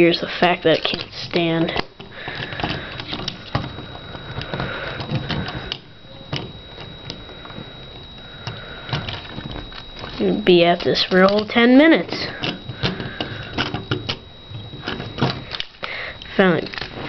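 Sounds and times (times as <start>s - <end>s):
faint steady high tone: 0.0s - 17.0s.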